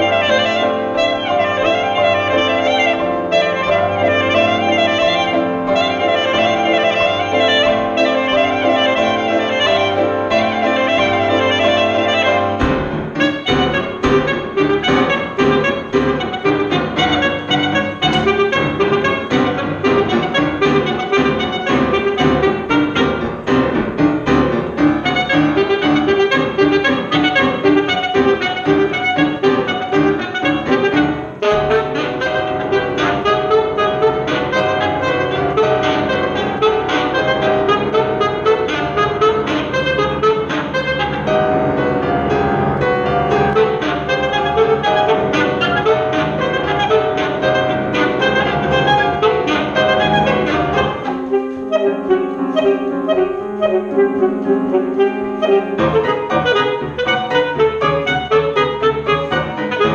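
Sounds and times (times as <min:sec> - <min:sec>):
grand piano: 0:00.0 - 0:59.9
saxophone: 0:00.0 - 0:59.9.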